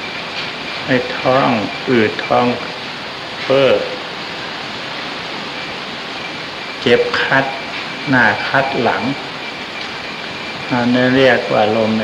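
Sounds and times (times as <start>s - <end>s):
recording hiss: 0.0s - 12.0s
man speaking: 0.9s - 2.7s, 3.5s - 4.0s, 6.8s - 9.2s, 10.7s - 12.0s.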